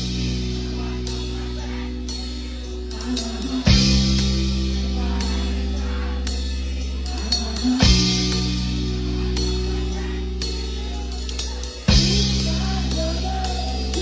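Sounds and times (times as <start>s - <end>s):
live band playing: 0.0s - 14.0s.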